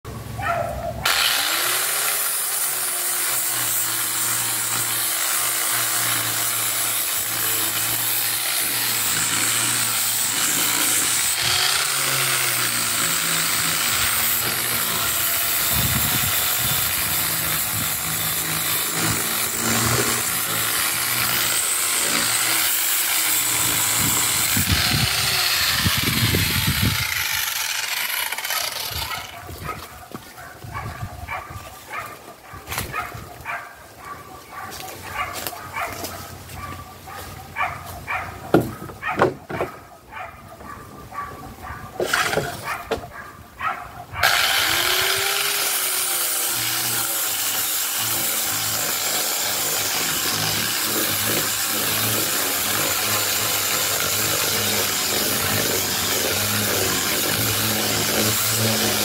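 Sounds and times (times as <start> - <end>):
electric disc sander on wood: 1.1 - 29.7, 44.2 - 59.0.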